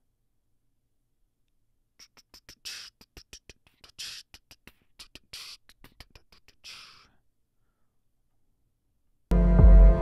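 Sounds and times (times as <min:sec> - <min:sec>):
beatboxing hissed tss: 0:02.0 - 0:07.2
beatboxing mouth clicks: 0:02.0 - 0:07.2.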